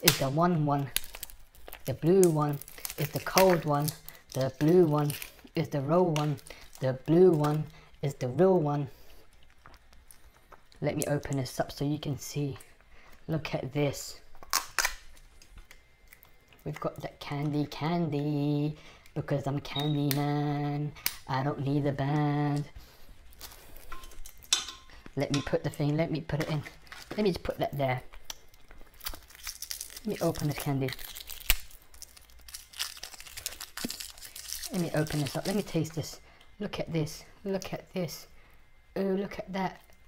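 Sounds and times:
plastic seal crinkling rips: 0.0 - 5.5, 14.4 - 16.3, 26.5 - 27.4, 28.2 - 35.8
wrapper tearing open: 0.0 - 5.5, 14.4 - 15.5, 26.6 - 27.4, 28.2 - 35.9
plastic wrapper crinkling: 0.0 - 11.8, 14.2 - 17.6, 18.9 - 36.2
sharp snaps: 21.0 - 21.3.

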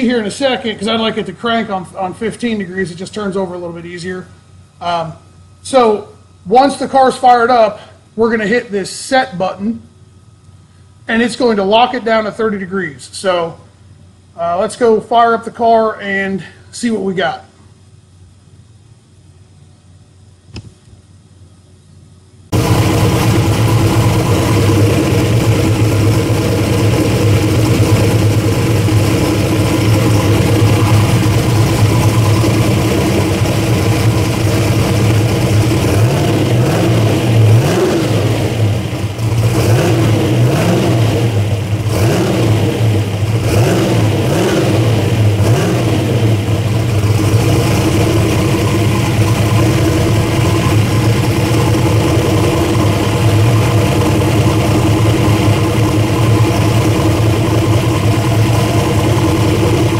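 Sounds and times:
car engine idling and revving: 22.5 - 59.9.

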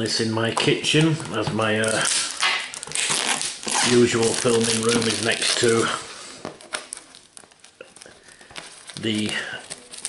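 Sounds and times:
plastic shrink-wrap crinkling: 0.6 - 10.0.

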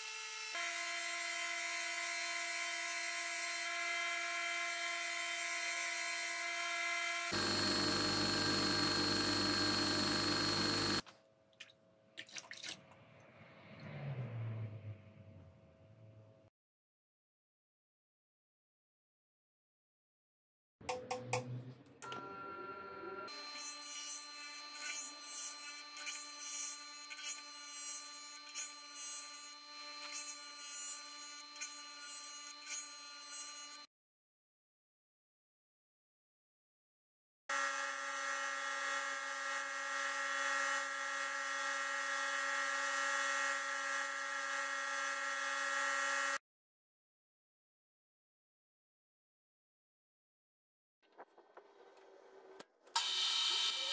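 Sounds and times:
bench grinder motor whining: 4.6 - 11.0.

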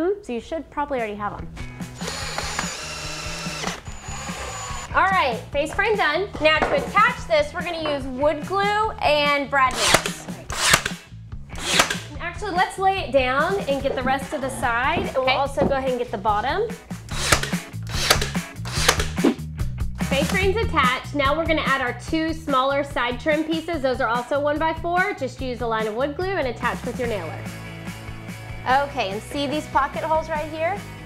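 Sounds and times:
background music with bass: 1.2 - 31.0
cordless drill driving screws: 1.9 - 5.0, 9.7 - 11.0, 11.6 - 12.1, 17.1 - 19.2
brad nailer firing: 2.0 - 5.0, 9.7 - 12.2, 17.1 - 19.2.

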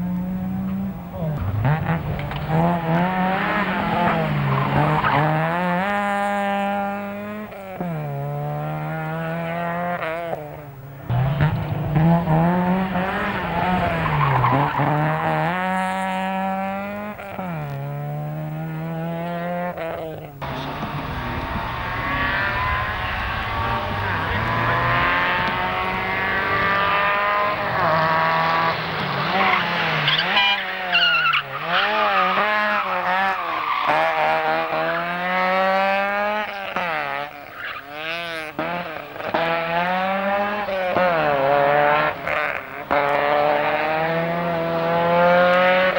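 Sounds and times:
rally car engine revving: 0.0 - 45.9
tyre squeal: 20.5 - 34.5, 37.4 - 38.0.

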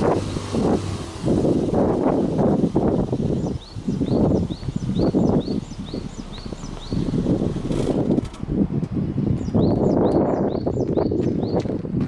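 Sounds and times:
car engine rumbling: 0.0 - 12.0
wind on microphone: 0.0 - 12.0
small bird chirping: 3.4 - 7.2, 9.4 - 11.7.

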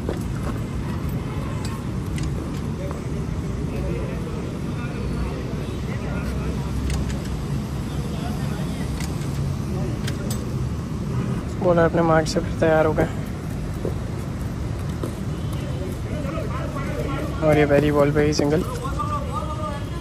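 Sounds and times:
faint distant voices: 0.0 - 20.0.

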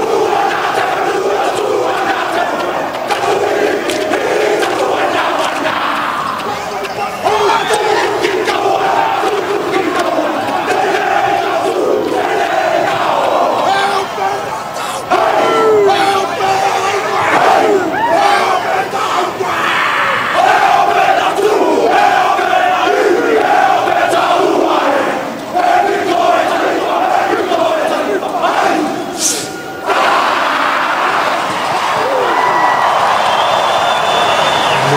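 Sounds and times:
men chanting and shouting in unison: 0.0 - 31.5, 34.4 - 34.9
crowd noise: 0.0 - 34.9.

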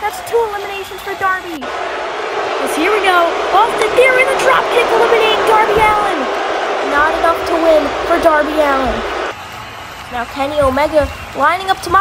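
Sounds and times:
steady background rush: 1.6 - 9.4.

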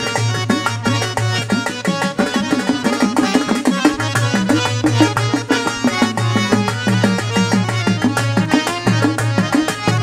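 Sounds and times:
hand drum rhythm: 0.0 - 10.0
harmonium melody: 0.0 - 10.0.

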